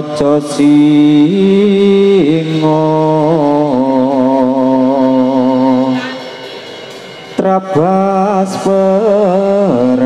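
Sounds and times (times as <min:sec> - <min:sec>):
man singing a long held note: 0:00.0 - 0:10.0.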